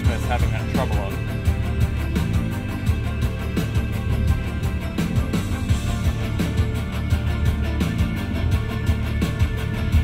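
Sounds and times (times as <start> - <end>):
rock song through car speakers: 0.0 - 10.0.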